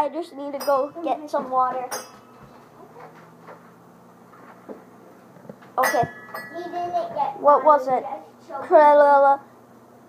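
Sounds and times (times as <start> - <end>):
ceiling fan humming: 0.0 - 10.0.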